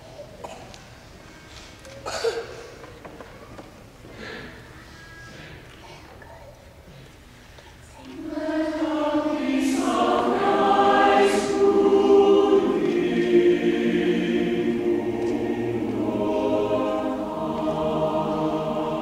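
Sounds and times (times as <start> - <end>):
mixed choir singing: 8.1 - 19.0.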